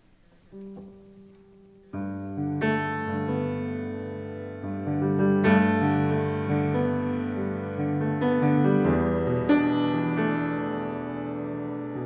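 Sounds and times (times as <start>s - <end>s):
solo piano chords: 0.0s - 12.0s.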